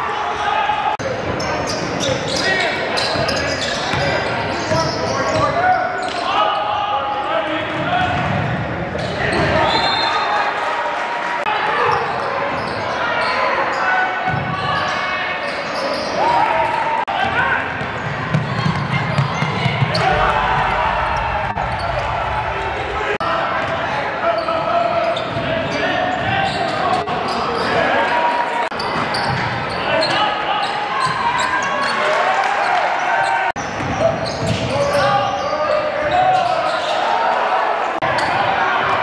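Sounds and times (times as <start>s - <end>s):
crowd voices and shouts: 0.0s - 39.0s.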